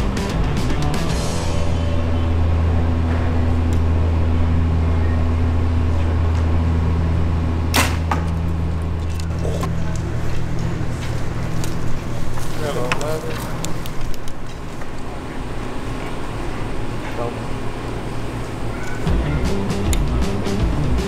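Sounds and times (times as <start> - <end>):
steady low hum: 0.0 - 21.0
bow shot crack: 7.7 - 8.4.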